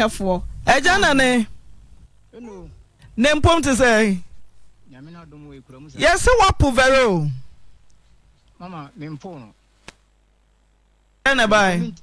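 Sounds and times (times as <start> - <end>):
sharp click: 9.8 - 10.0.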